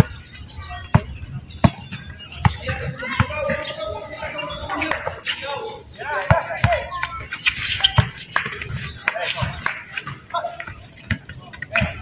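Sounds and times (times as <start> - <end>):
players calling out: 0.0 - 12.0
basketball bouncing on concrete: 0.8 - 3.6, 6.2 - 7.2, 7.8 - 12.0.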